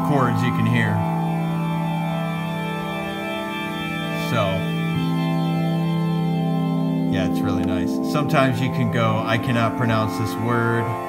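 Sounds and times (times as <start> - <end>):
synthesizer chord of held tones: 0.0 - 11.0.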